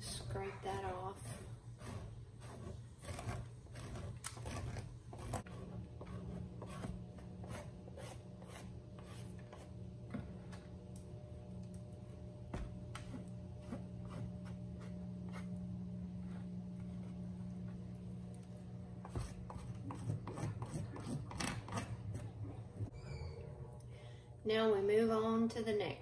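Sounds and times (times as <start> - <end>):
steady low hum: 0.0 - 26.0
knife scraping wax: 0.4 - 10.7, 12.9 - 17.8, 18.9 - 22.4.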